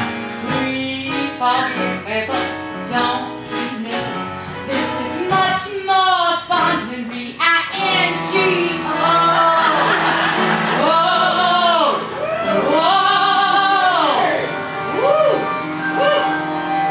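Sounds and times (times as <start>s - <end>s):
instrumental accompaniment: 0.0s - 16.9s.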